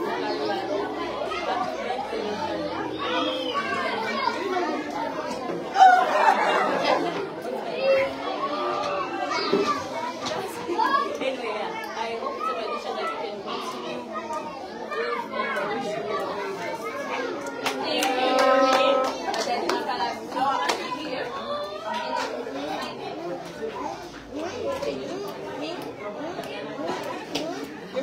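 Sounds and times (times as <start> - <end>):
young children chattering: 0.0 - 28.0.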